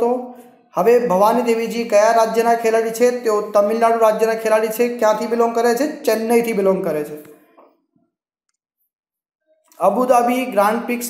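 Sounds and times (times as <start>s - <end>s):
man narrating: 0.0s - 7.3s, 9.7s - 11.0s.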